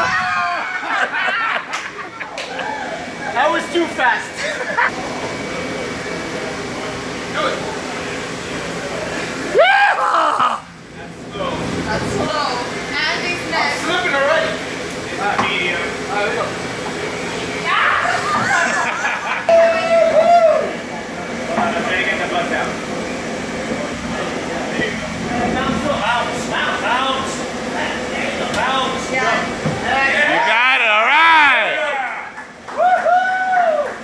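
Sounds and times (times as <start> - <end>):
people shouting and whooping: 0.0 - 3.4, 9.5 - 10.7, 17.6 - 20.9, 30.0 - 34.0
indistinct chatter: 1.9 - 32.6.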